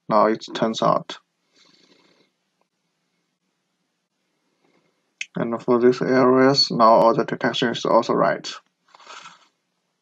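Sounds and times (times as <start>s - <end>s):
faint breath at microphone: 1.4s - 2.4s.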